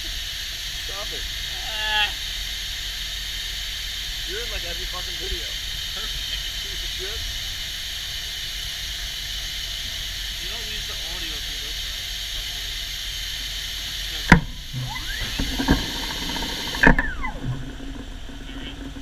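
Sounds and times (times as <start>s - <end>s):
compressed air hissing: 0.0s - 19.0s
pneumatic valve clunks: 13.4s - 19.0s.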